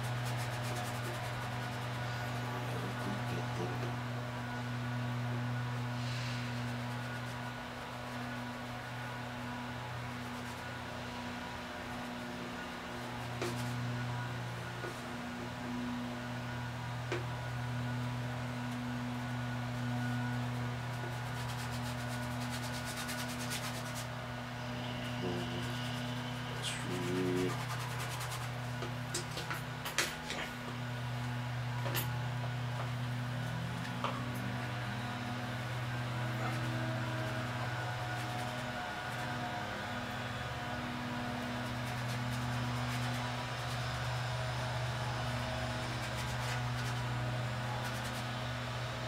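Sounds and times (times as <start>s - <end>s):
paintbrush rubbing on canvas: 0.0s - 4.0s, 11.8s - 14.1s, 19.5s - 29.4s, 41.4s - 44.4s, 45.2s - 48.4s
steady low hum: 0.0s - 49.0s.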